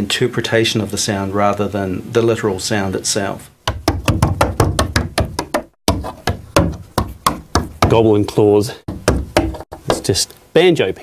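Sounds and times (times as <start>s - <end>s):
knocks and taps on wooden boards: 3.7s - 8.0s, 8.9s - 10.2s.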